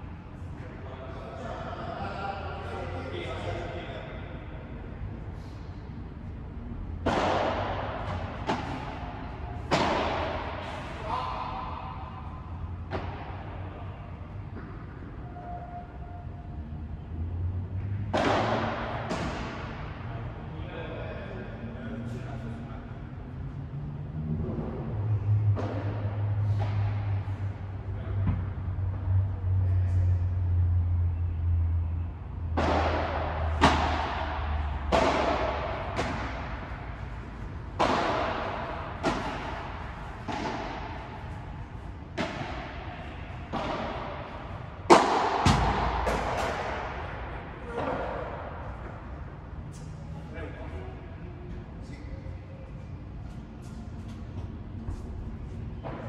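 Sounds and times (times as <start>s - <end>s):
steady low hum: 0.0s - 56.0s
padel ball hits echoing: 32.5s - 36.8s, 37.7s - 41.4s, 42.1s - 48.4s.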